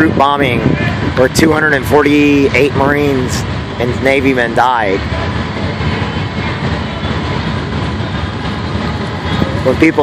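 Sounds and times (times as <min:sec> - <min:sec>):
road noise: 0:00.0 - 0:10.0
vehicle engine rumble: 0:00.0 - 0:10.0.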